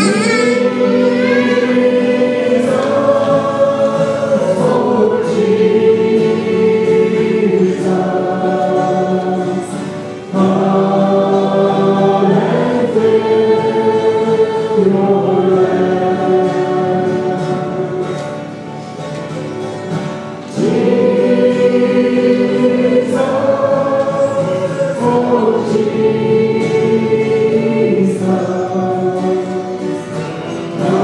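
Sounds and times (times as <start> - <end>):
women singing gospel song: 0.0 - 18.7, 20.4 - 31.0
acoustic guitar: 0.0 - 31.0.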